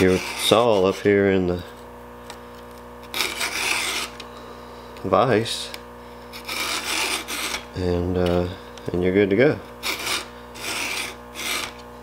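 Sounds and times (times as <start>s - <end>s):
file rasping on saw chain: 0.0s - 1.2s, 3.1s - 4.2s, 6.3s - 7.6s, 9.8s - 11.8s.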